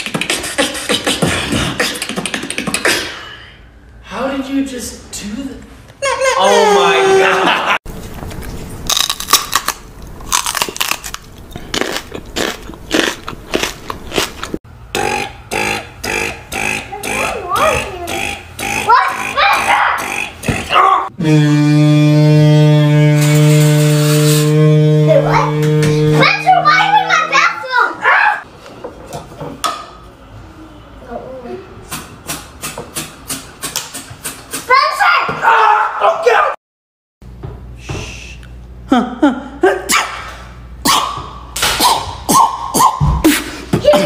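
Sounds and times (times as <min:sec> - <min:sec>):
beatboxing percussion hits: 0:00.0 - 0:03.4, 0:14.9 - 0:26.5, 0:31.9 - 0:34.7, 0:40.8 - 0:44.0
low held note rich in overtones: 0:21.2 - 0:27.6.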